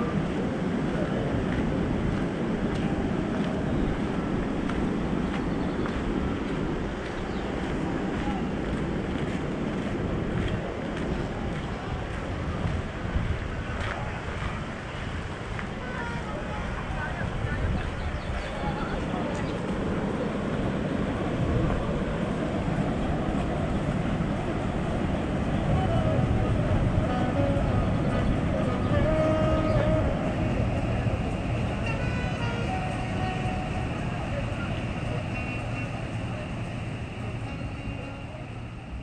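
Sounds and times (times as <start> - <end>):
boat engine: 0.0 - 39.0
faint voices: 0.0 - 39.0
river water rushing: 0.0 - 39.0.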